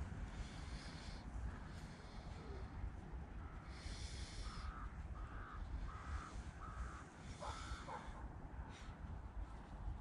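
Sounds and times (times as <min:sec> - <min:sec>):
crow cawing: 0:03.4 - 0:08.2.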